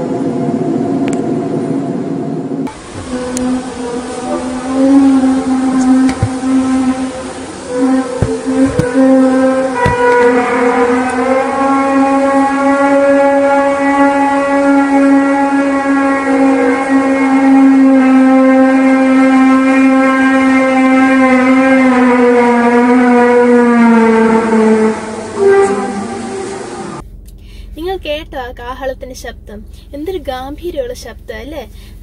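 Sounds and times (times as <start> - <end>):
trumpet-like drone: 0.0 - 27.0.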